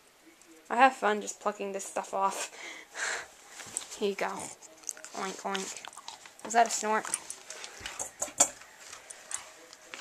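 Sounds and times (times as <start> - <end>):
dog crunching a bone treat: 3.7 - 10.0.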